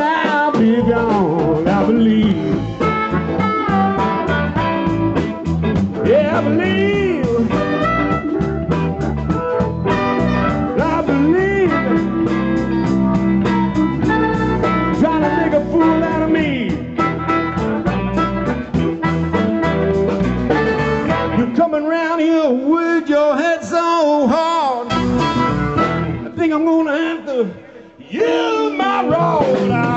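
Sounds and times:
live blues band playing: 0:00.0 - 0:27.6, 0:28.2 - 0:29.9
electric guitar lead bending: 0:00.6 - 0:21.6, 0:24.8 - 0:26.4, 0:28.8 - 0:29.9.

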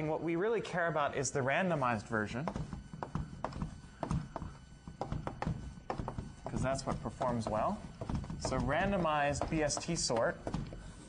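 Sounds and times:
chalk tapping on blackboard: 0:02.4 - 0:10.9.

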